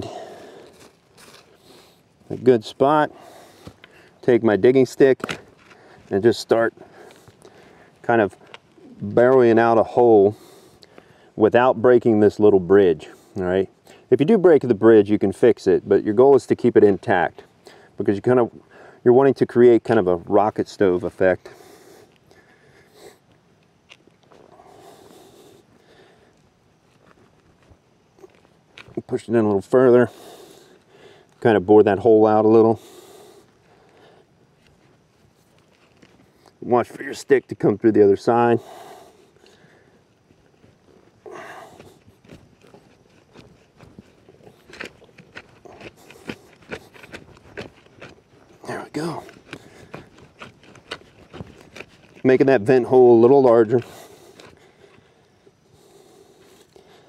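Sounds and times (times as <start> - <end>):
digging stick scraping soil: 41.3 - 54.9.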